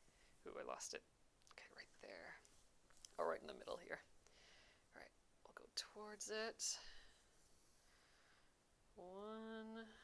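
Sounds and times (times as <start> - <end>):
faint soft sound: 0.0 - 10.0.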